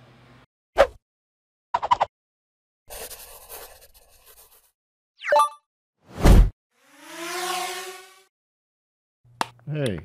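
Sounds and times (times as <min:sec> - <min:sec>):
whoosh with rising tone: 0:06.2 - 0:08.3.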